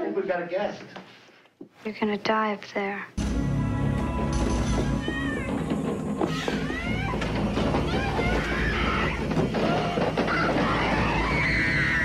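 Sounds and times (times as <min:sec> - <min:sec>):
eerie gliding wailing cries: 0:04.8 - 0:12.0.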